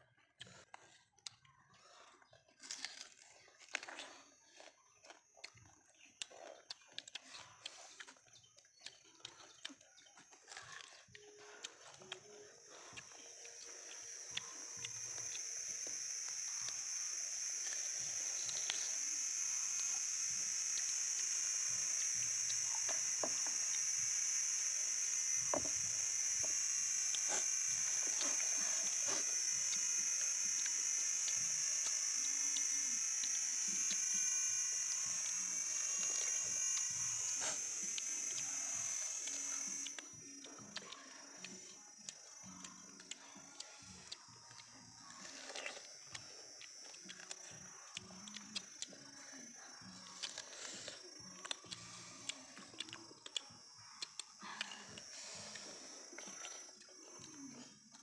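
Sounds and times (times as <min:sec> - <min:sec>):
people biting and chewing fruit: 0:00.0 - 0:58.0
cicadas droning: 0:08.0 - 0:58.0.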